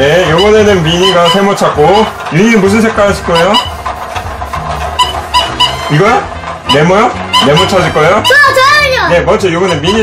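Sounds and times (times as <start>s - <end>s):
electronic beeping tune: 0.0s - 2.2s, 3.0s - 3.9s, 5.0s - 10.0s
toy motor humming: 0.0s - 10.0s.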